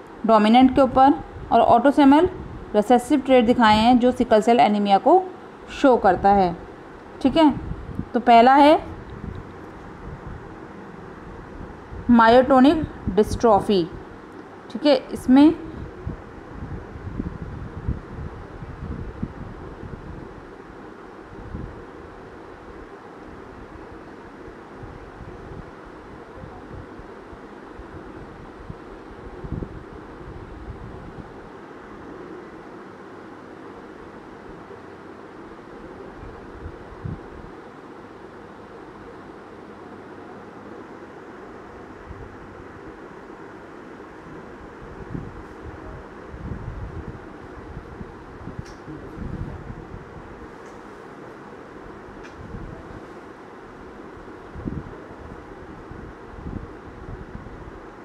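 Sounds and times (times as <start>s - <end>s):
fan hum and hiss: 0.0s - 58.0s.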